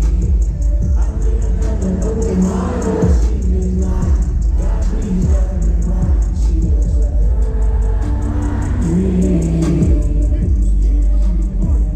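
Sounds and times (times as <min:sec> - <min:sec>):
loud live concert music: 0:00.0 - 0:11.9.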